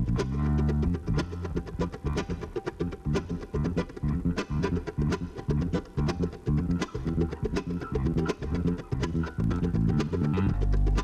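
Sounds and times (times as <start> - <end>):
busy electric bass line: 0.0 - 11.0
mandolin: 0.0 - 11.0.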